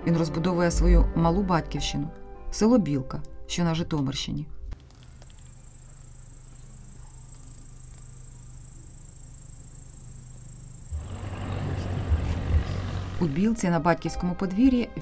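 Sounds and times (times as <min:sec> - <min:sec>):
insects chirring: 0:04.8 - 0:13.2
rushing noise with low rumbles: 0:10.9 - 0:13.3.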